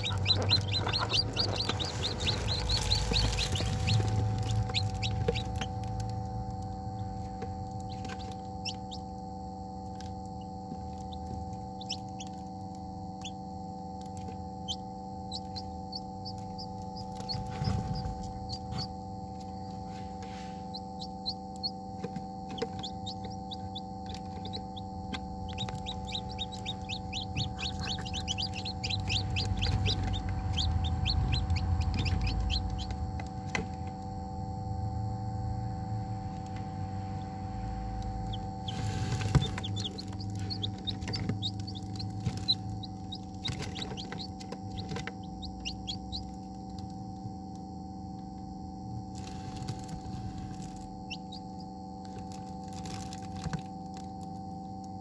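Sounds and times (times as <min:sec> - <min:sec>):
chicks peeping: 0:00.0 - 0:09.2, 0:09.8 - 0:12.5, 0:13.2 - 0:13.4, 0:14.0 - 0:34.0, 0:36.3 - 0:47.0, 0:49.1 - 0:54.0
steady low hum: 0:00.0 - 0:55.0.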